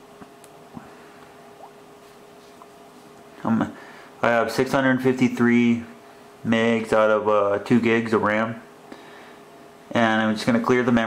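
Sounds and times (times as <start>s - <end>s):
faint steady hum: 0.0s - 11.0s.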